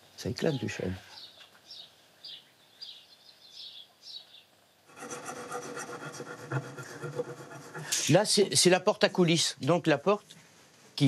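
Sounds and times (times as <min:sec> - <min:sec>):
chisel scraping wood: 0:04.9 - 0:08.1.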